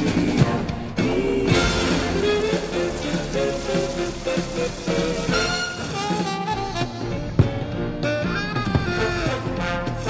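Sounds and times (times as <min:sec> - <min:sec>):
song over loudspeakers: 0:00.0 - 0:07.1
steady hiss: 0:01.5 - 0:06.4.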